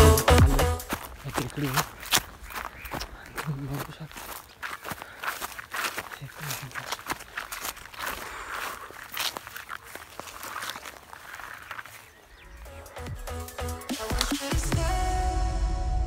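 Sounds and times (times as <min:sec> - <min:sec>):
man speaking: 0:00.3 - 0:02.0, 0:03.2 - 0:04.4, 0:06.0 - 0:07.1
footsteps on dry grass: 0:00.4 - 0:13.3, 0:13.9 - 0:14.7.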